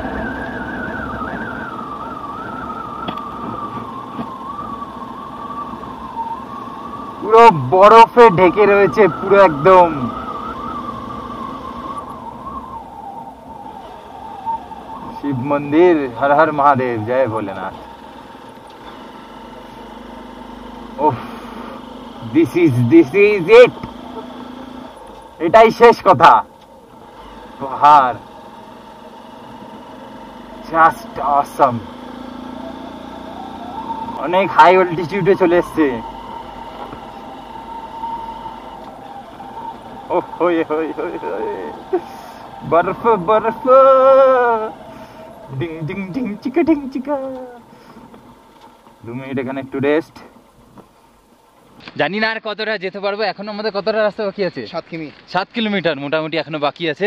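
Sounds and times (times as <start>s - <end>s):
high wavering whine: 0.0s - 51.4s
motorcycle engine and road noise: 0.0s - 57.0s.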